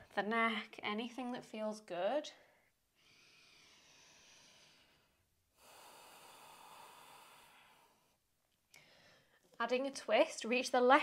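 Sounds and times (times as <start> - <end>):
woman breathing slowly: 2.4 - 9.4.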